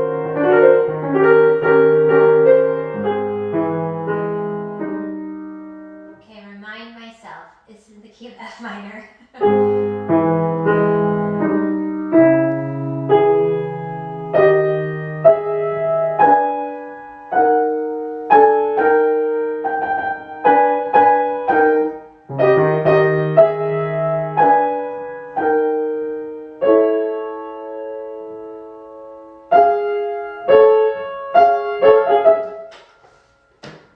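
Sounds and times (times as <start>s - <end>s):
grand piano chords: 0.0s - 6.2s, 9.4s - 33.9s.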